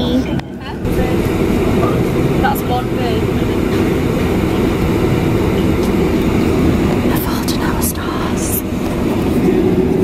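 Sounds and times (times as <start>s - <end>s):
airliner cabin rumble: 0.0s - 10.0s
faint voices: 0.0s - 10.0s.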